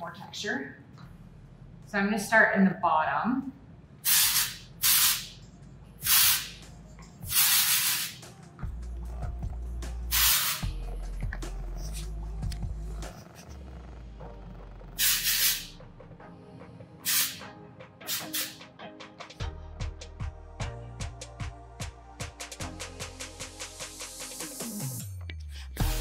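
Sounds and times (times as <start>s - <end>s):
aerosol spray hissing: 4.1s - 5.4s, 6.0s - 6.6s, 7.3s - 8.2s, 10.1s - 10.7s, 15.0s - 15.7s, 17.1s - 17.4s, 18.1s - 18.6s
background music with low beat: 5.4s - 26.0s.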